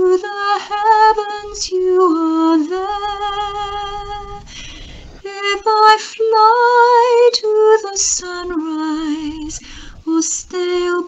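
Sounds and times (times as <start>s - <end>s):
woman singing with vibrato: 0.0s - 11.0s.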